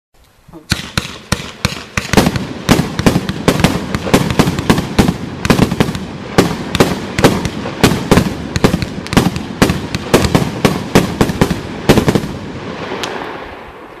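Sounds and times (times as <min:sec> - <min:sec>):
fireworks cake firing sharp reports: 0:00.7 - 0:13.8.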